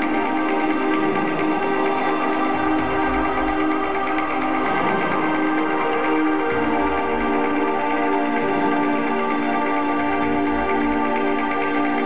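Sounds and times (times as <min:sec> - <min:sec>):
synthesizer chords: 0:00.0 - 0:12.0.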